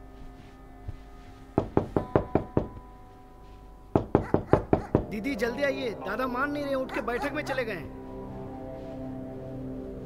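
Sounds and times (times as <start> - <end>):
rapid knocking on a door: 1.6 - 2.8, 4.0 - 5.2.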